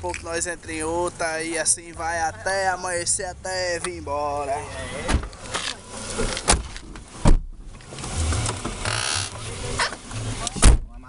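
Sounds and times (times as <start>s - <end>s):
car engine rumbling: 0.0s - 11.0s
heavy thump: 5.0s - 5.4s, 6.1s - 8.8s, 10.5s - 11.0s.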